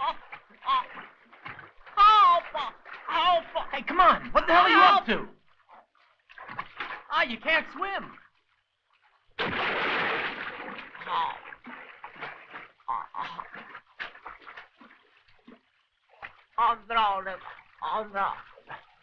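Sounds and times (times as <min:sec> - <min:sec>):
water splashing and sloshing: 0:00.0 - 0:19.0.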